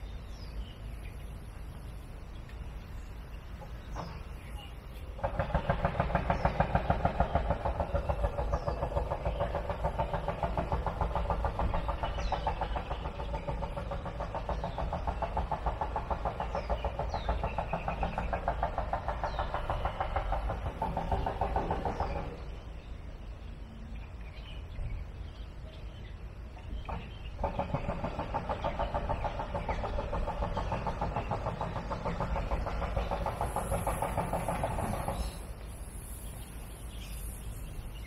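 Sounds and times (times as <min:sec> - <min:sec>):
small engine running: 0:05.1 - 0:22.6, 0:26.9 - 0:37.2.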